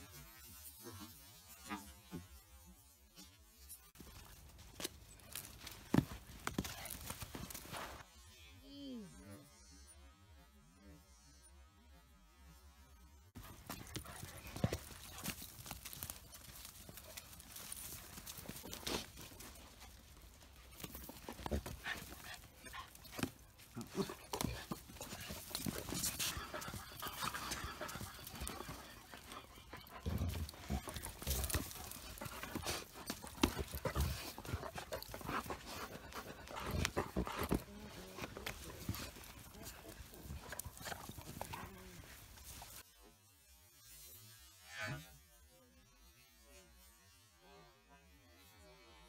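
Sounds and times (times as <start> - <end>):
dogs scuffling on gravel: 4.0 - 8.0, 13.4 - 42.8.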